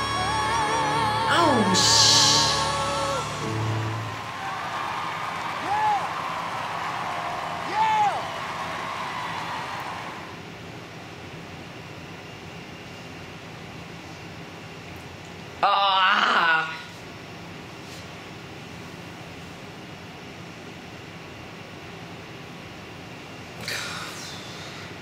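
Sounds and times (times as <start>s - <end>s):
boys singing close harmony: 0.0s - 4.2s
backing music: 0.0s - 4.4s
audience cheering and applauding: 0.0s - 10.4s
audience whoops: 0.0s - 10.4s.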